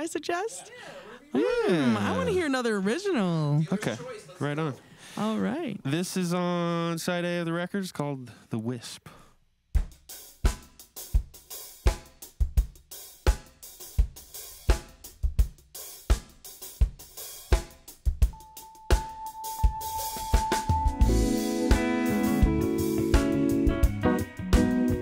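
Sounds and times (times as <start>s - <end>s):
jazz drum kit groove: 9.7s - 25.0s
bass and chords of band: 18.2s - 25.0s
held high note: 18.4s - 23.2s.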